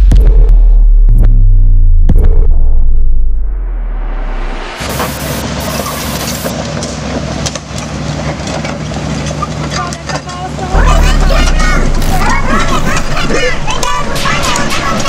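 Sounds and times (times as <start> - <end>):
crawler tracks clattering on asphalt: 5.7 - 10.6
excavator diesel engine running: 10.4 - 15.0.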